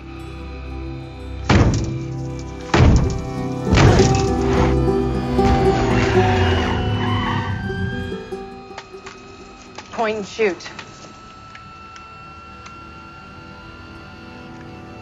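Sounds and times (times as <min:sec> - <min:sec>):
orchestral music: 0:00.0 - 0:10.4, 0:11.2 - 0:15.0
sustained low tones: 0:00.0 - 0:15.0
deep percussive hits: 0:01.5 - 0:02.1, 0:02.7 - 0:06.2
sliding falling tone: 0:02.7 - 0:09.6.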